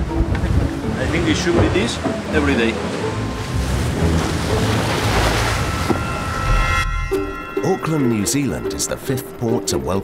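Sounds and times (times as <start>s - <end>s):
water rushing along boat hull: 0.0s - 10.0s.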